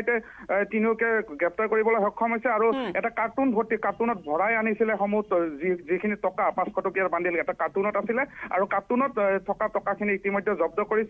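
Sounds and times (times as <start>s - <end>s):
person narrating news: 2.6s - 3.0s.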